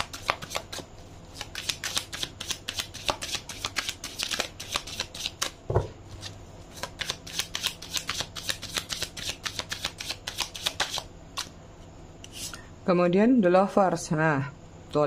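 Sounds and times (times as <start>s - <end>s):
cards being shuffled: 0.0s - 5.6s, 6.2s - 11.5s.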